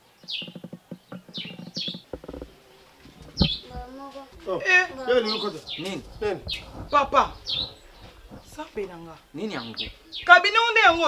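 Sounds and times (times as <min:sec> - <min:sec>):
small birds chirping: 0:00.0 - 0:11.0
low rattling pulsing sound: 0:01.3 - 0:10.4.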